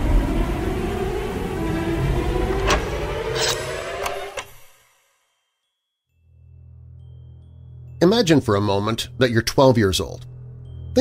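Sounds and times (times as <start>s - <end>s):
music and sound effects: 0.0s - 11.0s.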